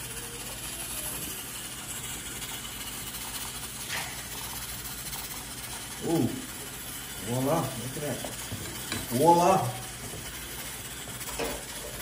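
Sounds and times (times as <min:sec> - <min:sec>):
melting sugar hissing: 0:00.0 - 0:12.0
wooden spoon stirring: 0:00.4 - 0:12.0.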